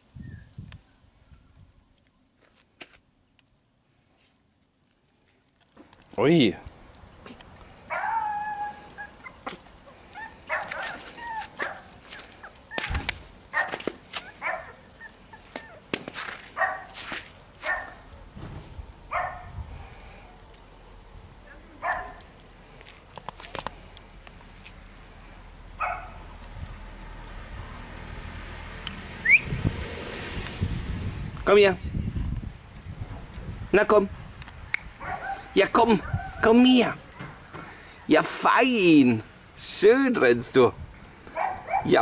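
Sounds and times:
small dog barking: 7.9s - 9.6s, 10.2s - 15.8s, 16.6s - 17.0s, 17.6s - 18.0s, 19.1s - 19.5s, 21.8s - 22.2s, 25.8s - 26.2s, 35.0s - 36.4s, 41.4s - 42.0s.

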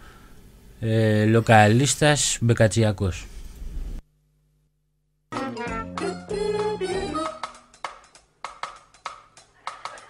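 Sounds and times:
background music: 5.3s - 10.0s.

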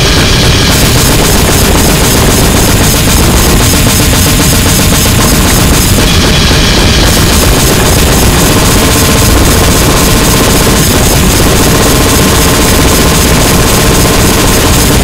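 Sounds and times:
distorted noise-grind music: 0.0s - 15.0s
rapid drumming: 0.0s - 15.0s.

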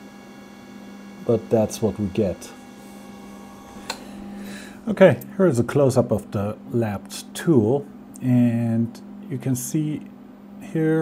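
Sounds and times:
gear motor humming with whine: 0.0s - 11.0s.

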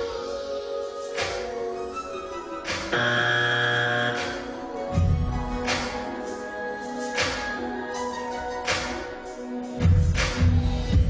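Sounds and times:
background music held tones: 0.0s - 11.0s
sustained chord: 2.9s - 5.6s.

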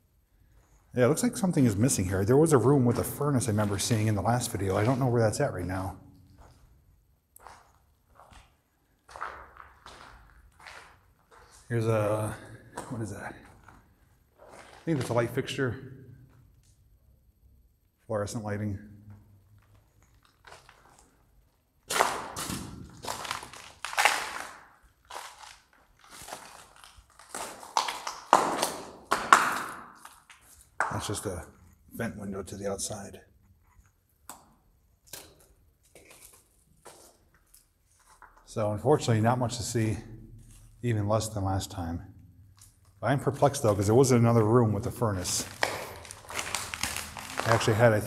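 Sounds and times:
footsteps on concrete floor: 1.6s - 15.4s, 19.1s - 31.3s, 35.8s - 38.5s, 42.6s - 48.0s.

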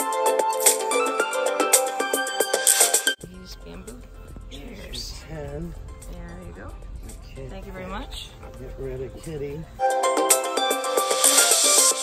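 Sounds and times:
background music: 0.0s - 12.0s
low rumble: 3.2s - 9.8s.

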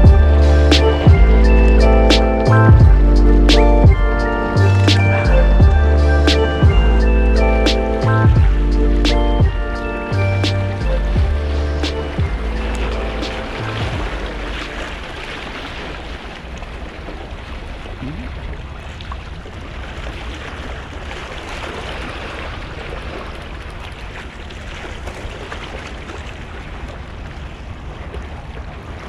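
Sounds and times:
background music: 0.0s - 14.8s
wind on microphone: 0.0s - 29.0s
small waves against rocks: 11.5s - 29.0s.

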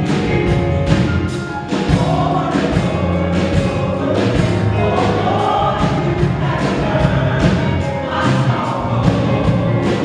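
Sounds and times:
gospel choir singing: 0.0s - 10.0s
live band playing: 0.0s - 10.0s.

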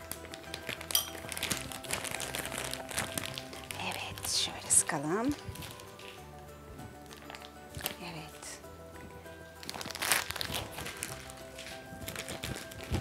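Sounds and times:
background music: 0.0s - 13.0s
plastic piping bag crinkling: 0.0s - 13.0s.

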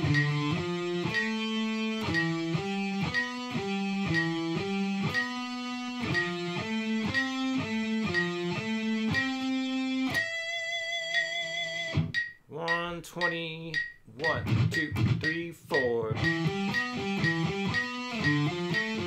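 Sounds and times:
metronome clicks: 0.0s - 19.0s.

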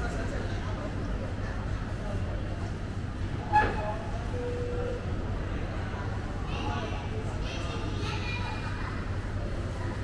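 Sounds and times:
faint voices of people: 0.0s - 10.0s.

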